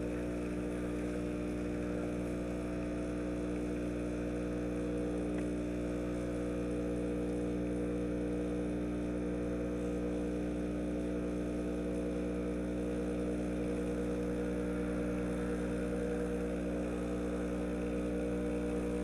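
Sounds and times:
espresso machine pump humming: 0:00.0 - 0:19.0.

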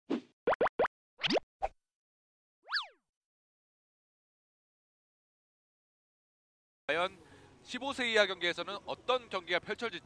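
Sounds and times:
synthesized cartoon pops: 0:00.5 - 0:01.4.

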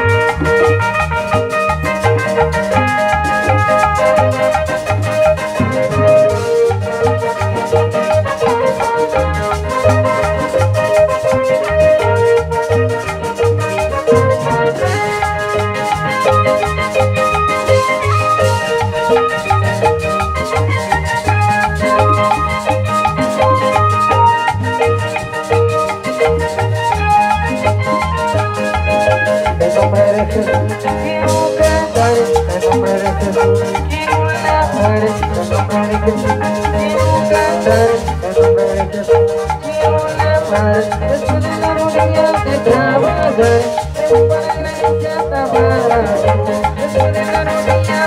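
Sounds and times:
live band playing upbeat music: 0:00.0 - 0:48.0.

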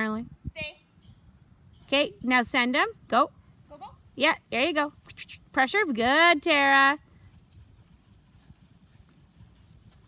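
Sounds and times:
sheep hooves on sand: 0:07.0 - 0:10.0.

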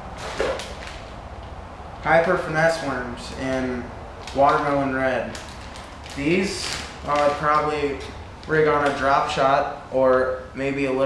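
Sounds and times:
plastic package rustling: 0:00.2 - 0:01.2, 0:03.3 - 0:09.2.

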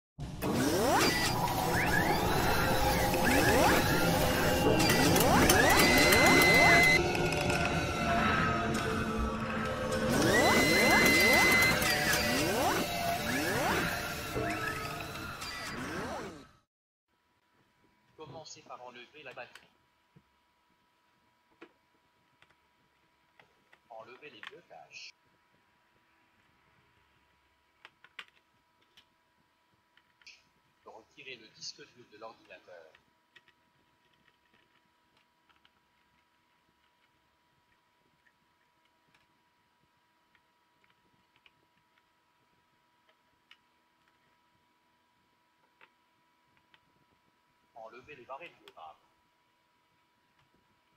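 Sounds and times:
mechanical whirring and clicking: 0:00.4 - 0:08.1, 0:08.7 - 0:16.6.

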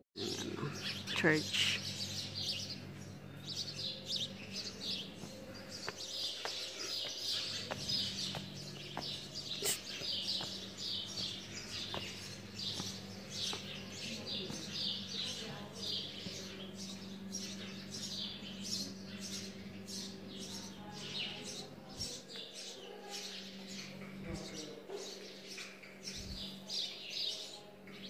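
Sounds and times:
small birds chirping: 0:00.2 - 0:28.0
footsteps on stone steps: 0:04.6 - 0:16.4.

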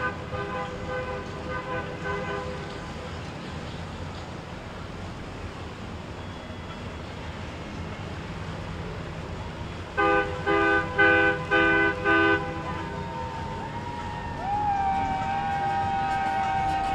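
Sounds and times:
boat horn blasts: 0:00.0 - 0:02.9, 0:10.0 - 0:16.9.

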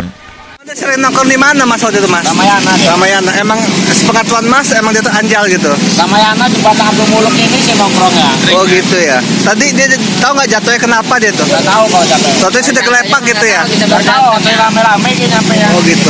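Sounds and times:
man speaking: 0:00.0 - 0:16.0
road traffic: 0:00.0 - 0:16.0.

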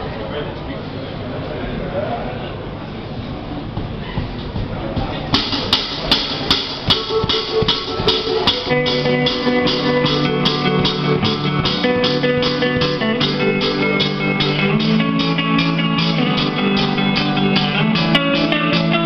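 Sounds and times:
steady drum beat: 0:03.6 - 0:19.0
electric guitar chords: 0:05.7 - 0:19.0.

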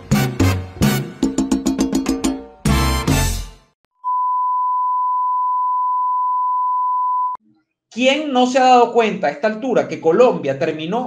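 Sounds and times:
steady test-tone beep: 0:04.0 - 0:07.4.

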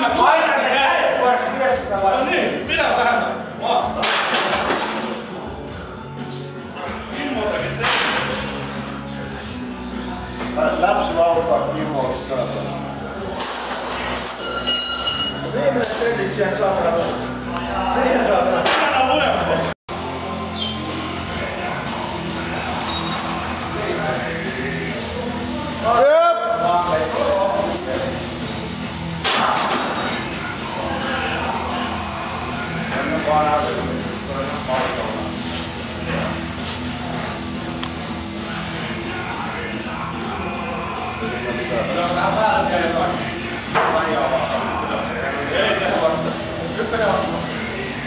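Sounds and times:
background music: 0:00.0 - 0:48.0
men shouting: 0:30.6 - 0:32.9.

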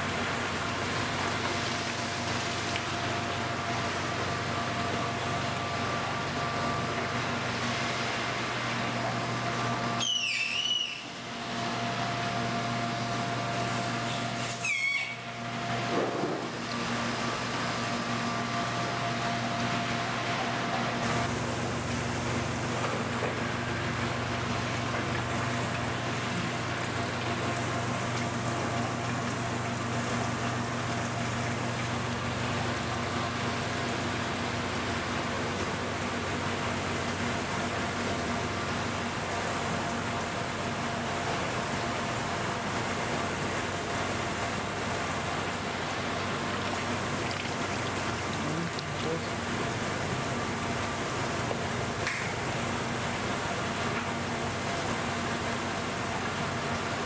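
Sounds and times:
pumps humming: 0:00.0 - 0:57.0
water rushing through tanks: 0:00.0 - 0:57.0.

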